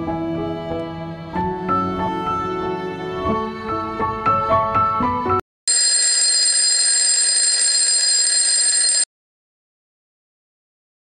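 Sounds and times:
alarm bell ringing: 5.7 - 9.1.

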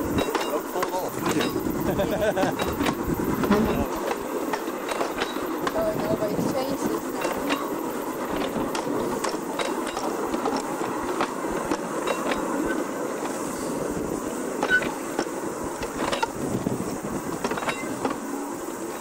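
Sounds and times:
clicks and knocks of wheels: 0.0 - 1.8, 2.4 - 19.0
steel wheels rolling on track: 0.0 - 19.0.

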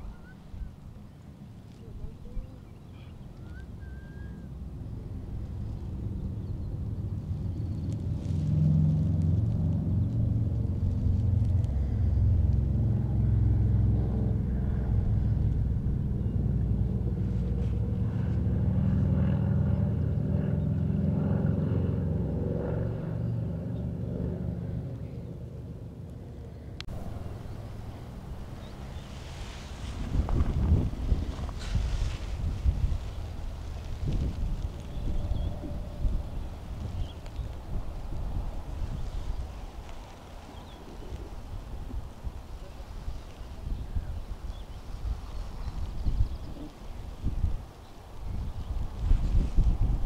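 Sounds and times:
passing vehicle engine rumble: 0.0 - 50.0.

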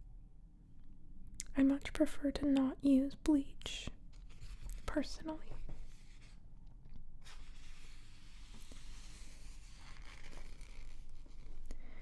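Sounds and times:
fingertips brushing magazine page: 7.2 - 11.6.

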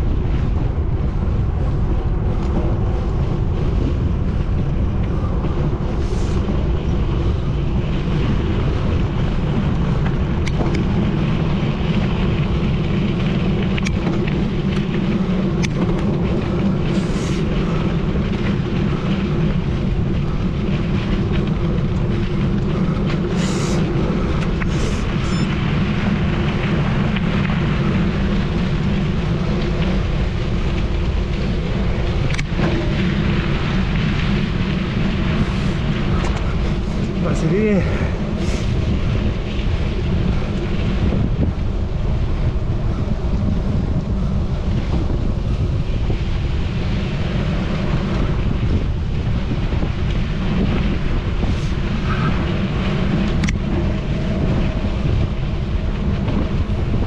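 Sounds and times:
bike tyres rumbling on gravel: 0.0 - 57.0
wind buffeting microphone: 0.0 - 57.0.

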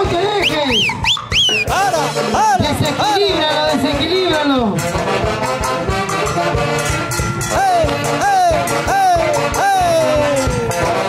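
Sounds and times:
latin dance band playing: 0.0 - 11.0.

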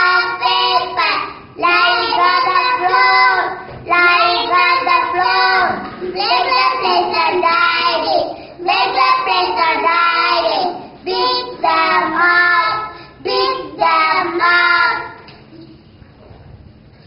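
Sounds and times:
boys singing together: 0.0 - 15.3.

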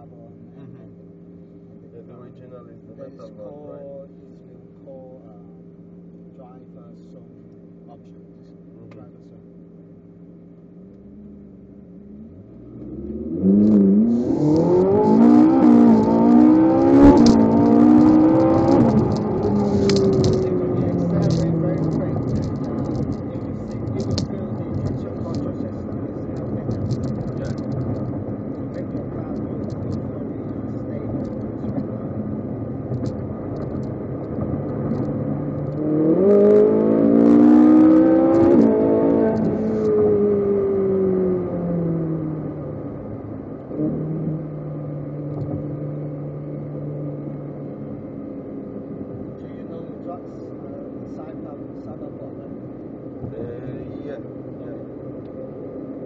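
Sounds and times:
car engine accelerating hard: 10.7 - 56.0.

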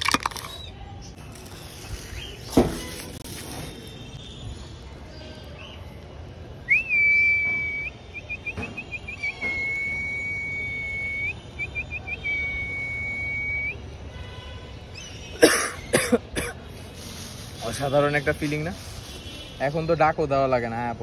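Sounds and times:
person whistling: 9.1 - 13.8
harsh coughing bursts: 15.4 - 16.7.

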